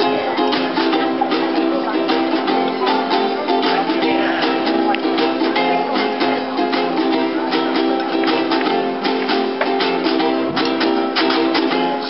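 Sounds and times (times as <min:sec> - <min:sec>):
strummed acoustic guitars: 0:00.0 - 0:12.0.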